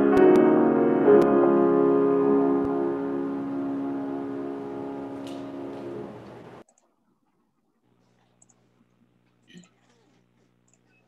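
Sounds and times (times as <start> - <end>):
grand piano chord: 0.0 - 6.6.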